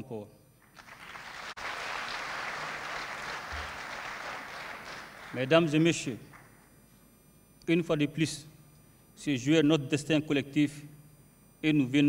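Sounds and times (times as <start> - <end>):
large audience applauding: 0.6 - 5.5.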